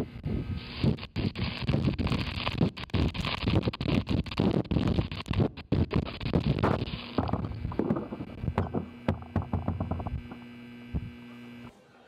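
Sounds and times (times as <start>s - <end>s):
steady hum: 0.0s - 12.0s
crackling clicks: 0.8s - 11.1s.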